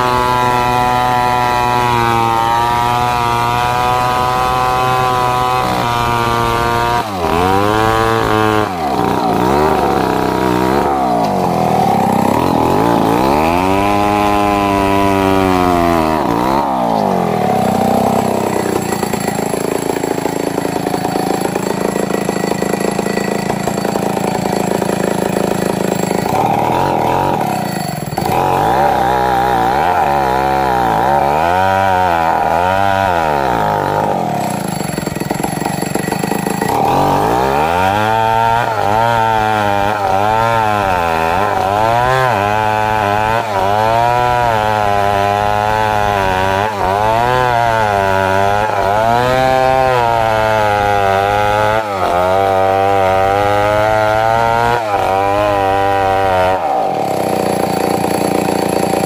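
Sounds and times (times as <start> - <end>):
chainsaw ripping a log: 0.0 - 59.0.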